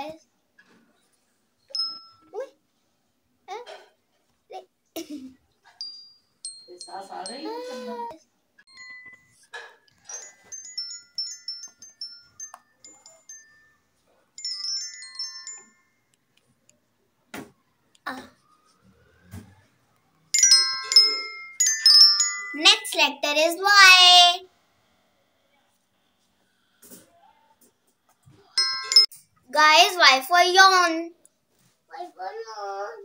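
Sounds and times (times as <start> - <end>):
toy xylophone chiming notes: 1.7 - 2.4, 5.8 - 8.1, 8.7 - 16.2, 20.4 - 23.0, 28.6 - 29.2
xylophone notes from phone: 20.4 - 22.7, 28.6 - 29.2.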